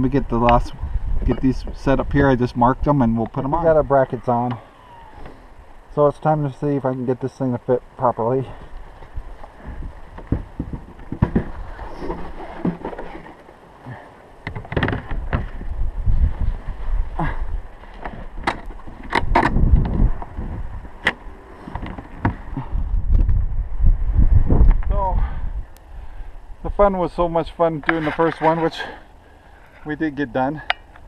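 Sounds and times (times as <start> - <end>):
wind buffeting microphone: 0.0 - 5.7, 8.6 - 12.4, 14.5 - 26.9.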